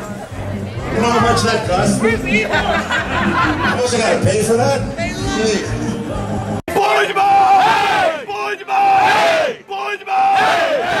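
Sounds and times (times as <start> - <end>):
group of voices shouting a call: 6.7 - 11.0.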